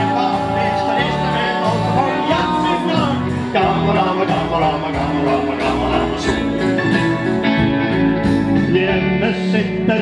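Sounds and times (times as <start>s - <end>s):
live band music: 0.0s - 10.0s.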